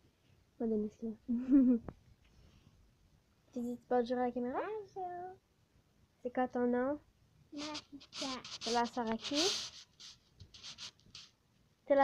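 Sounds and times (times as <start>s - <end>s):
child whispering: 7.6s - 9.7s
person speaking: 7.6s - 11.3s.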